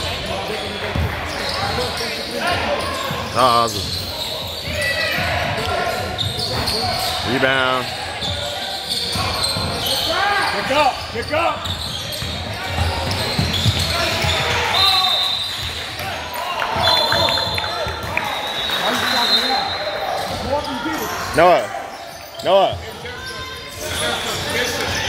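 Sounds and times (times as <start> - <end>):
sneaker squeaks: 0.0 - 15.9, 16.8 - 25.0
people shouting in a gym: 0.0 - 25.0.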